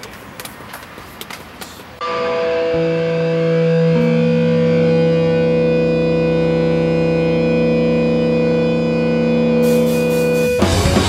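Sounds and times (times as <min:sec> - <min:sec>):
distorted electric guitar chord: 0:02.0 - 0:11.0.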